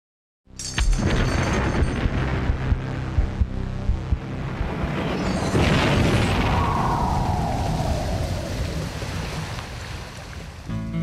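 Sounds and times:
low rumbling noise: 0:01.0 - 0:10.2
falling whoosh: 0:04.4 - 0:09.8.

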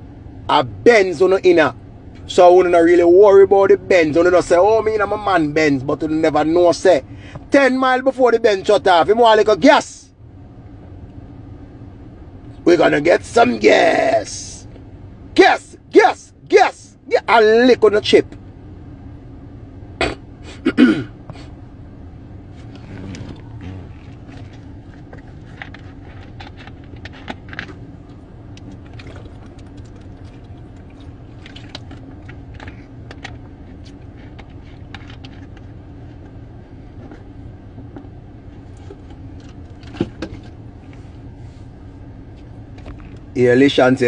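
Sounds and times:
low hum inside car cabin: 0:00.0 - 0:44.0.

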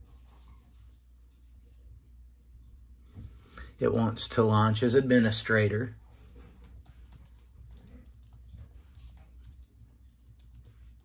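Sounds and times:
faint keyboard typing: 0:06.2 - 0:11.0.

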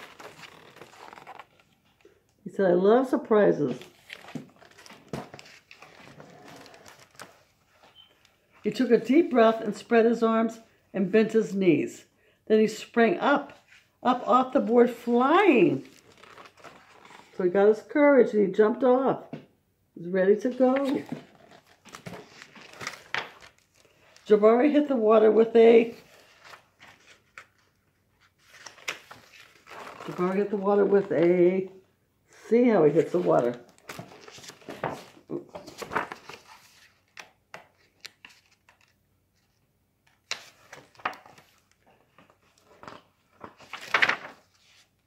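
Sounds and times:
paper pages rustling: 0:00.0 - 0:02.3, 0:03.7 - 0:09.6, 0:14.6 - 0:17.4, 0:20.5 - 0:24.8, 0:25.7 - 0:31.7, 0:33.0 - 0:45.0.

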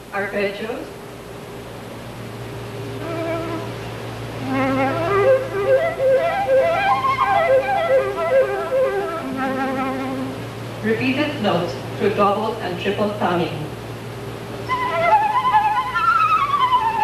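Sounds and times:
steady low hum: 0:00.0 - 0:17.0
flute with vibrato: 0:03.0 - 0:03.8, 0:04.4 - 0:10.4, 0:14.7 - 0:17.0.

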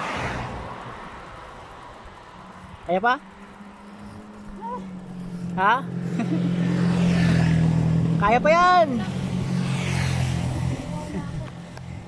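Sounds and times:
motorcycle engine humming: 0:00.0 - 0:12.0.

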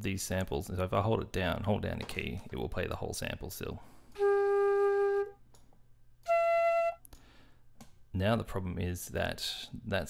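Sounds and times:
sampled flute notes: 0:04.1 - 0:05.4, 0:06.2 - 0:07.1.

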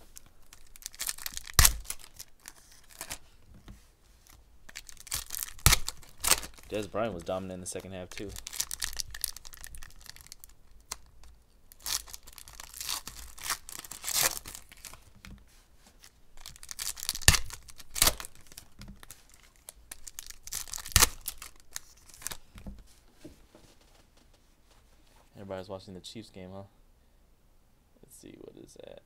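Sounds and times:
foil wrappers crinkling: 0:00.0 - 0:03.4, 0:04.2 - 0:15.2, 0:16.0 - 0:22.5
foil ripping: 0:00.1 - 0:03.2, 0:04.7 - 0:11.1, 0:11.7 - 0:15.1, 0:16.4 - 0:22.4.

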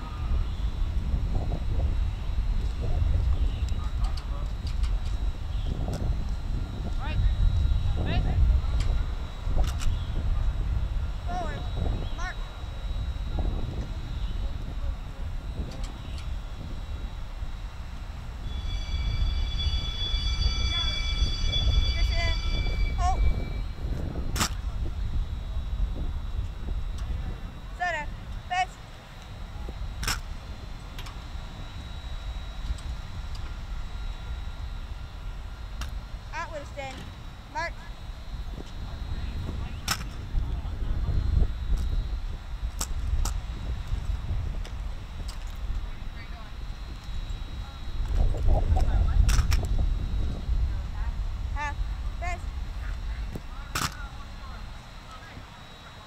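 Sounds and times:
wind rumble on microphone: 0:00.0 - 0:56.0
faint high chirps: 0:18.4 - 0:23.8.

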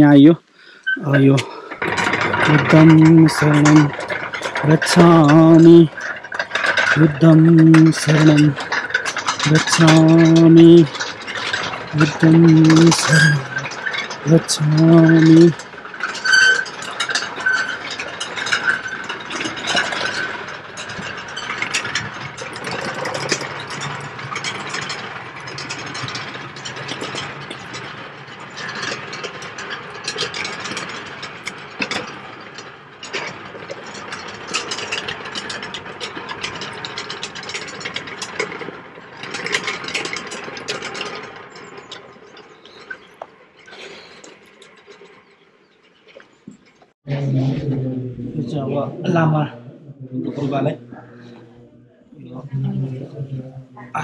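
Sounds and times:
prayer wheels clicking and rattling: 0:00.0 - 0:47.9, 0:50.3 - 0:54.0.

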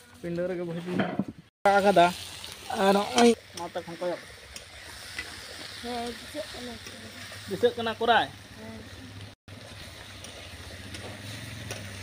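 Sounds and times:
vegetables sizzling in a pan: 0:01.6 - 0:12.0.

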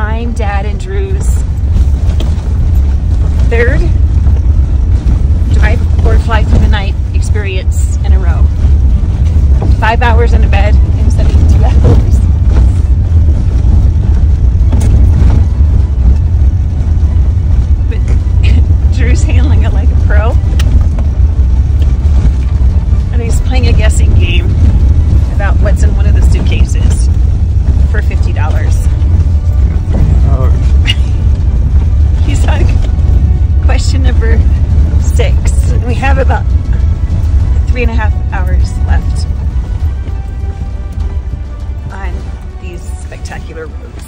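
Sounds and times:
car cabin road and engine rumble: 0:00.0 - 0:44.0.

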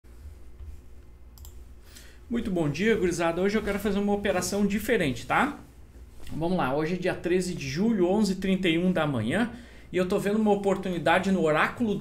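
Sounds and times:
low steady hum: 0:00.1 - 0:12.0
computer mouse clicks: 0:01.3 - 0:01.6.

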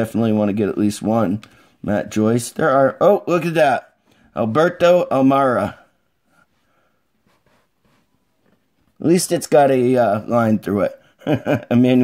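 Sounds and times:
soft rustles of cards being shuffled: 0:06.4 - 0:09.0.

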